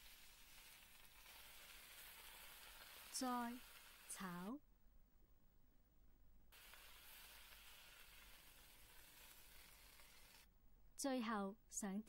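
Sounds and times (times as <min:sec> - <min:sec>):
vegetables sizzling in a wok: 0:00.0 - 0:04.6, 0:06.5 - 0:10.5.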